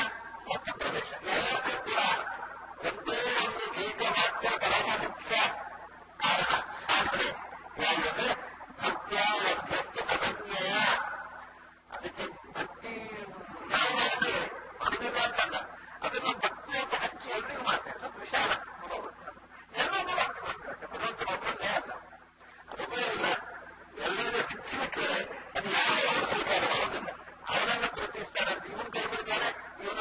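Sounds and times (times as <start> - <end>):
man talking: 0.0 - 22.0, 22.6 - 30.0.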